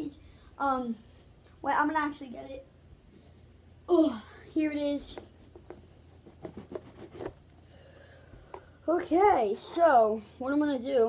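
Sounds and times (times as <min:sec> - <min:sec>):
faint room hum: 0:00.0 - 0:11.0
card box taps and rustles: 0:05.2 - 0:07.4.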